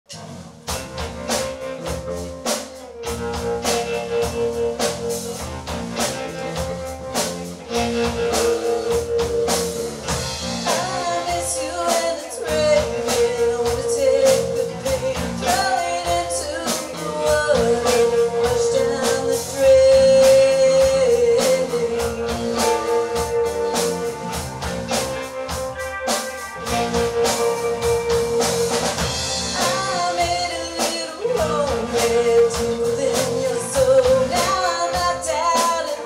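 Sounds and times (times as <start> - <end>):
drum kit beat: 0.1 - 36.0
live rock band playing: 0.1 - 36.0
woman singing: 10.6 - 24.0, 29.4 - 36.0.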